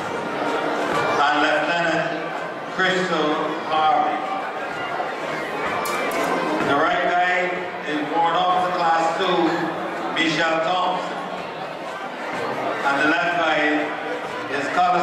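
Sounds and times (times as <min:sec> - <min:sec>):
people talking: 0:14.5 - 0:15.0.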